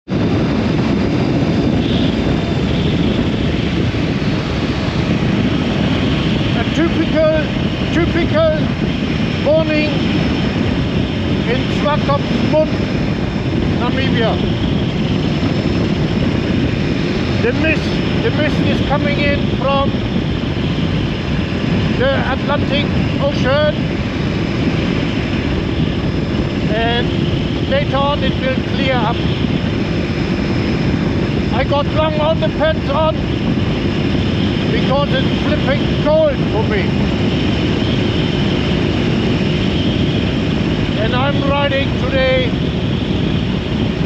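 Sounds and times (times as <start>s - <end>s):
motorcycle riding at speed: 0.0s - 44.0s
road noise: 0.0s - 44.0s
wind rushing over microphone: 0.0s - 44.0s
man speaking: 6.5s - 8.7s, 9.4s - 10.0s, 11.5s - 12.8s, 13.8s - 14.4s, 17.4s - 20.0s, 22.0s - 23.8s, 26.7s - 29.3s, 31.5s - 33.2s, 34.7s - 37.0s, 41.0s - 42.6s.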